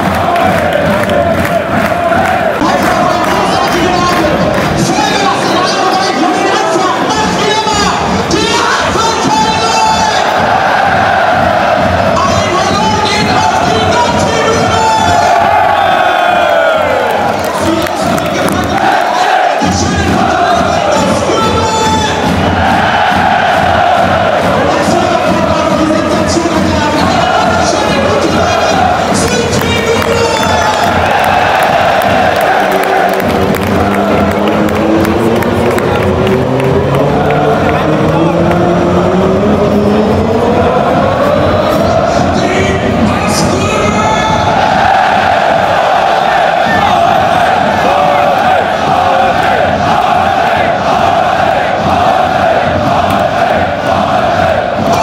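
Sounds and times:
football crowd chanting: 0:00.0 - 0:55.0.

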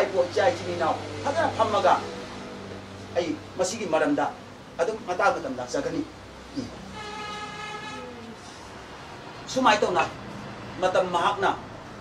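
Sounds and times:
faint distant horn tone: 0:06.8 - 0:08.6.

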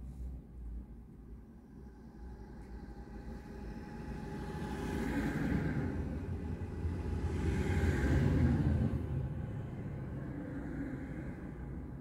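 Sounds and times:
vehicles passing close by: 0:03.2 - 0:12.0.

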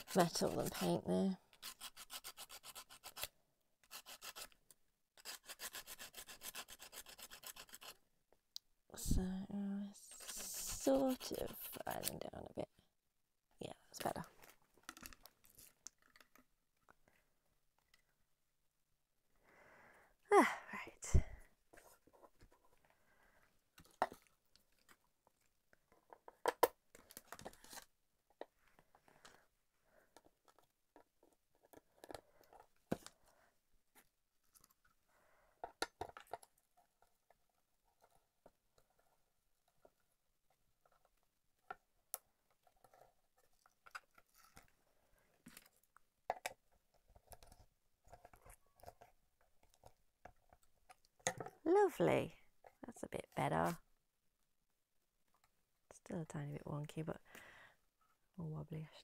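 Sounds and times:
plastic parts clicking and scraping: 0:14.0 - 0:17.1, 0:23.7 - 0:29.4, 0:30.0 - 0:33.3, 0:35.6 - 0:40.1, 0:40.8 - 0:51.6.

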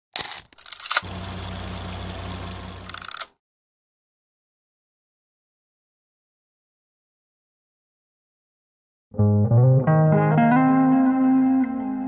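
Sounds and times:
pulsing mechanical whirr: 0:00.7 - 0:03.3
clicking rattling bursts: 0:02.2 - 0:03.3.

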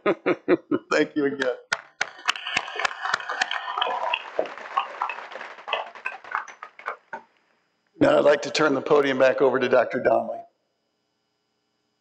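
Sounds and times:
audience applause: 0:01.8 - 0:07.2.

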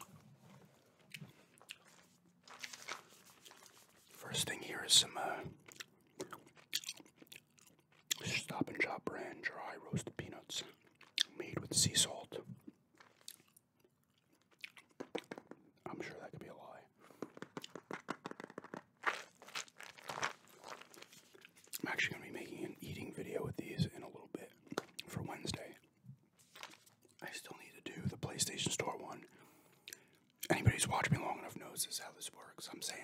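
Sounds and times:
gum chewing with mouth clicks: 0:00.0 - 0:03.7, 0:05.5 - 0:08.9, 0:10.6 - 0:11.7, 0:12.4 - 0:15.8, 0:17.0 - 0:21.8, 0:24.5 - 0:25.1.

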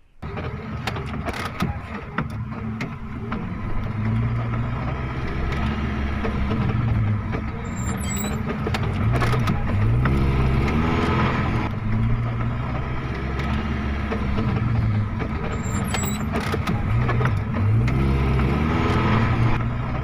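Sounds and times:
truck engine at low revs: 0:00.0 - 0:20.0.

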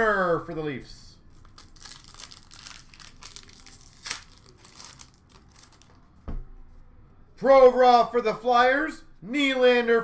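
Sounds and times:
card pack wrapper crinkling: 0:01.3 - 0:06.0
wrapper snapping: 0:01.4 - 0:06.0.

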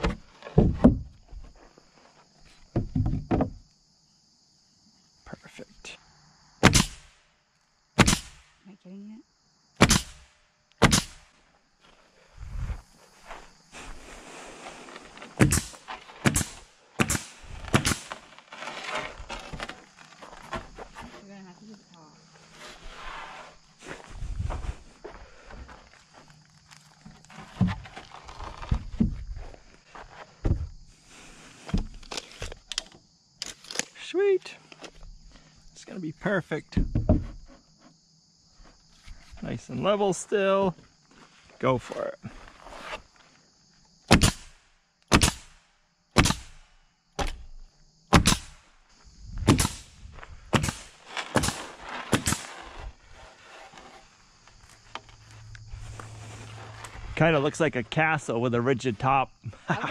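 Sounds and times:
boards scraping and shuffling: 0:00.0 - 0:03.6, 0:11.8 - 0:21.4, 0:22.4 - 0:33.9, 0:36.8 - 0:38.0, 0:38.6 - 0:43.4, 0:50.0 - 0:58.0
pneumatic nail gun shots: 0:06.6 - 0:07.2, 0:08.0 - 0:08.5, 0:09.8 - 0:11.3, 0:15.4 - 0:18.2, 0:44.1 - 0:45.6, 0:46.2 - 0:46.6, 0:48.1 - 0:48.6, 0:49.5 - 0:49.9, 0:50.6 - 0:52.6.

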